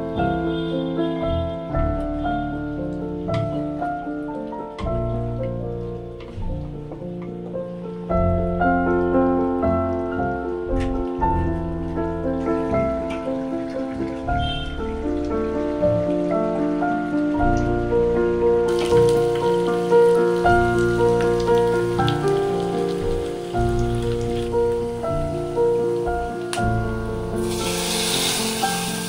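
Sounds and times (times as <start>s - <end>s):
background music with held notes: 0.0s - 29.0s
garlic sizzling in oil: 18.7s - 29.0s.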